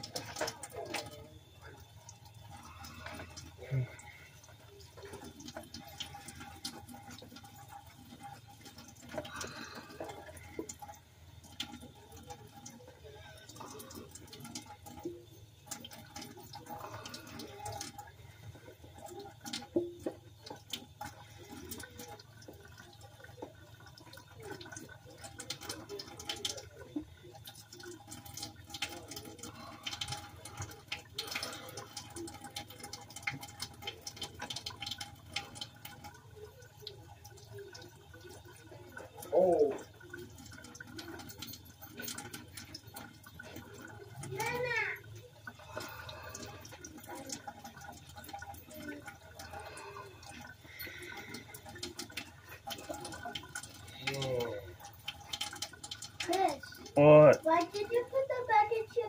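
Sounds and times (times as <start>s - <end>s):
water running and splashing: 0.0s - 59.0s.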